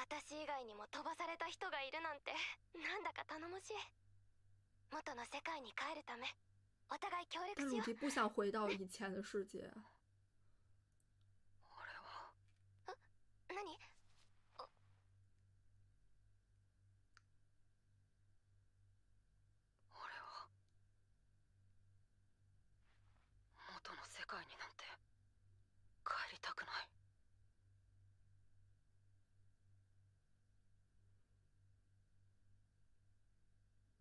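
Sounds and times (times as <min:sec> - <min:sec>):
person whispering: 0:11.6 - 0:12.4, 0:19.9 - 0:20.5.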